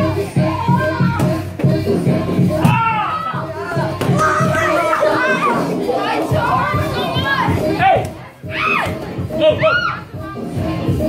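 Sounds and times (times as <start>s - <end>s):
children shouting: 2.6s - 10.1s.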